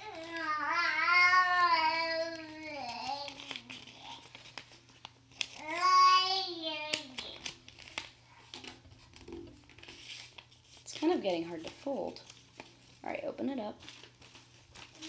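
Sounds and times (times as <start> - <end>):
paper being folded: 0.0 - 15.0.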